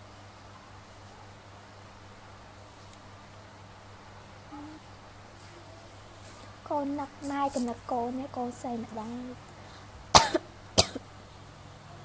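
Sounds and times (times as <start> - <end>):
woman coughing: 10.2 - 11.0.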